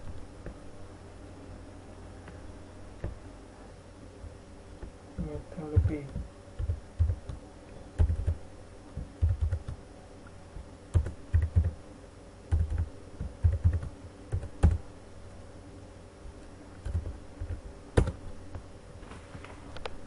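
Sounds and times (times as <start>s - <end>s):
faint steady hum: 0.0s - 20.0s
computer keyboard typing: 5.2s - 7.4s, 8.0s - 8.4s, 9.0s - 9.8s, 10.9s - 11.8s, 12.5s - 14.8s, 16.8s - 18.2s.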